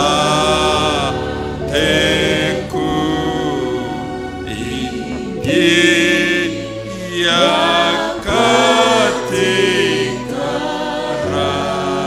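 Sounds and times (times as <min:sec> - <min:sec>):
group singing worship song: 0:00.0 - 0:12.0.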